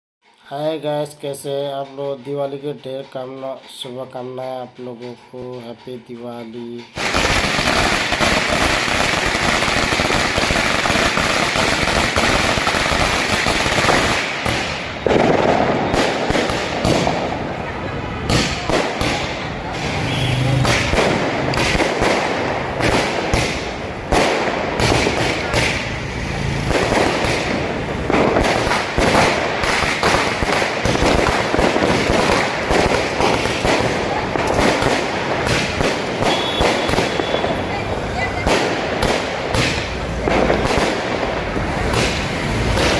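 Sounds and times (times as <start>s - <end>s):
firecrackers crackling: 6.9s - 42.9s.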